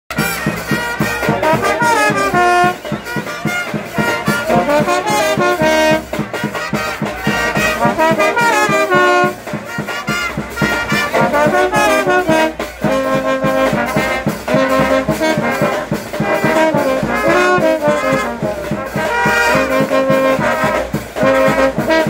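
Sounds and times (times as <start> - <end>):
brass band playing: 0.1 - 22.0
quick percussion beat: 0.1 - 22.0.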